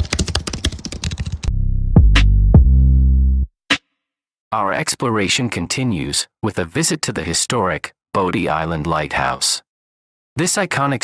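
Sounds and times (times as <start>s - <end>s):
keyboard typing clicks: 0.0s - 1.5s
low synth bass tone: 1.5s - 3.5s.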